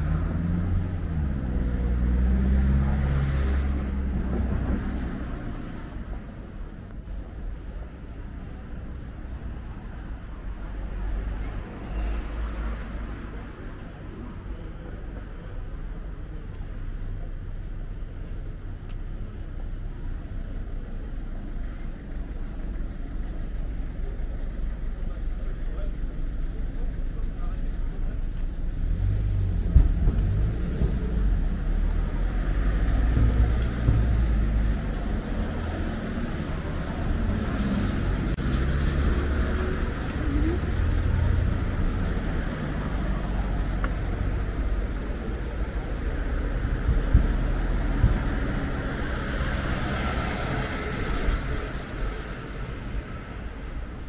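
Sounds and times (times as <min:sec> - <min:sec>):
cars driving past: 0:00.0 - 0:17.3, 0:18.2 - 0:54.0.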